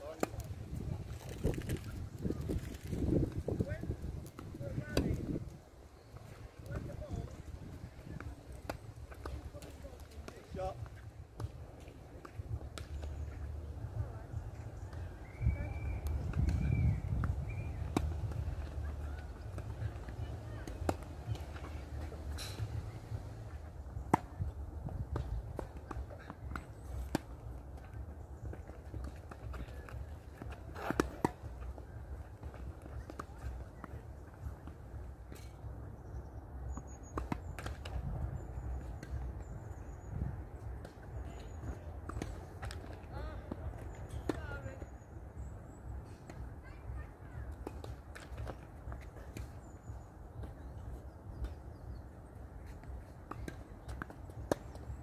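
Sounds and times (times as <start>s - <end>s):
tennis balls struck and bouncing: 0.0s - 1.8s, 2.4s - 15.2s, 15.8s - 45.0s, 47.2s - 55.0s.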